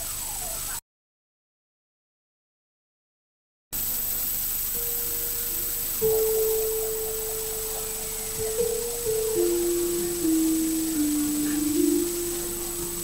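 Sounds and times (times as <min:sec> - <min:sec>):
gamelan music: 0:04.8 - 0:13.0.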